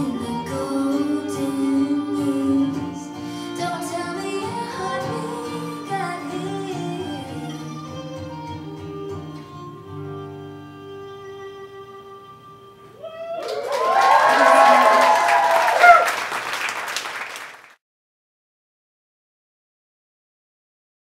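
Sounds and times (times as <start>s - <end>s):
guitar cello and violin chord: 0.0s - 12.9s
audience applause and cheering: 13.0s - 17.8s.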